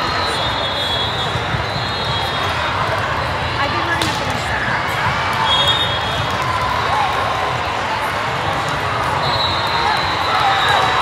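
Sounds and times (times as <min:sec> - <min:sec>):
voices of players and spectators: 0:00.0 - 0:11.0
volleyballs struck and bouncing: 0:02.4 - 0:06.6.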